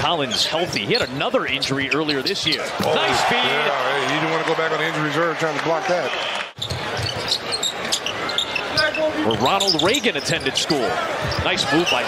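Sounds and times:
sneakers squeaking: 0:06.6 - 0:12.0.

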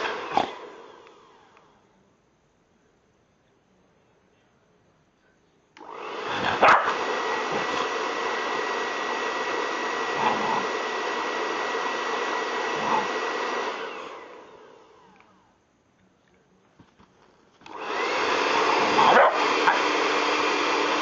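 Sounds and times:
hair dryer blowing: 0:00.0 - 0:01.7, 0:05.8 - 0:15.3, 0:17.6 - 0:21.0.

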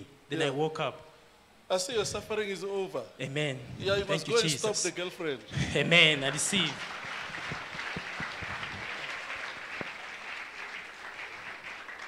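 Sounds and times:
congregation applauding: 0:05.8 - 0:12.0.

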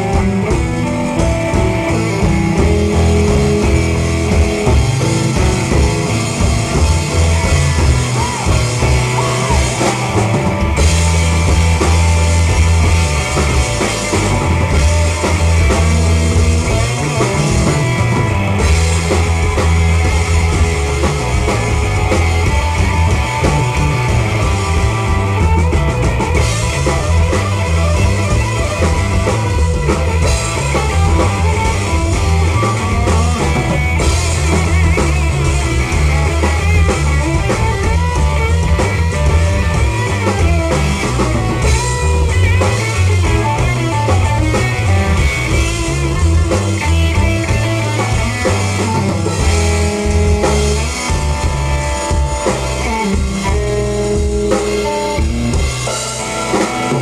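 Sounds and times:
bass line: 0:00.0 - 0:57.0
drum kit: 0:00.0 - 0:57.0
electric guitar: 0:00.0 - 0:57.0.

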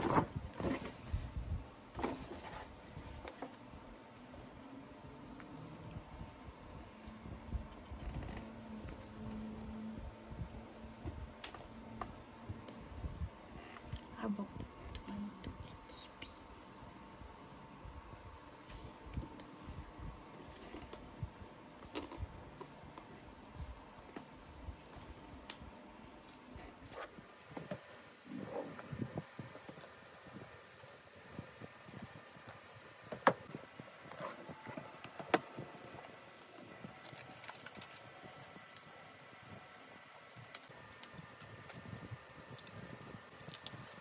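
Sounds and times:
soft whispering: 0:13.6 - 0:17.0.

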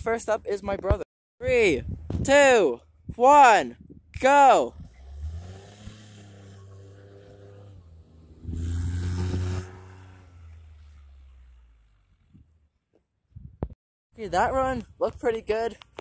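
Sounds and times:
vehicle engine pulling away: 0:04.6 - 0:12.9.

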